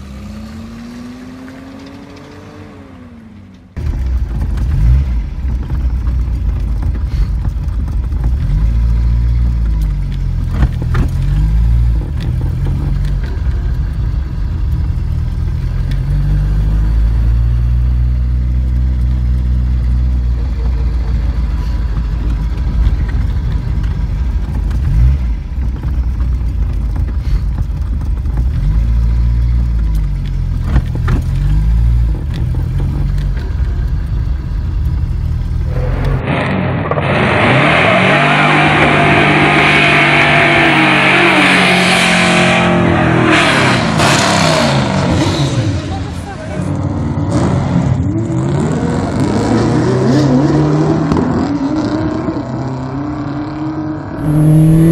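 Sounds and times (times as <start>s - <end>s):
car engine revving: 0.0s - 54.9s.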